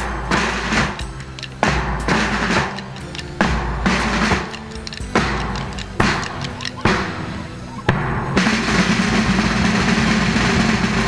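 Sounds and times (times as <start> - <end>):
brass band playing: 0.0 - 11.0
heavy drum strikes: 0.0 - 11.0.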